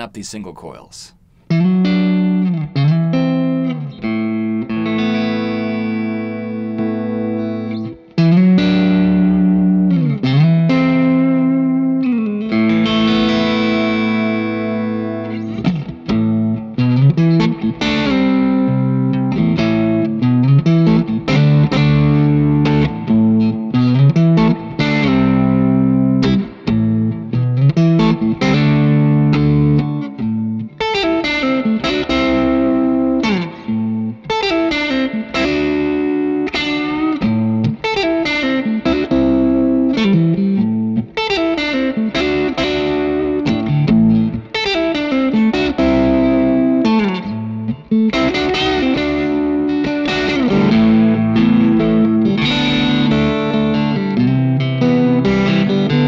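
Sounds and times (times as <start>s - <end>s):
electric guitar chords and riffs: 1.3s - 56.0s.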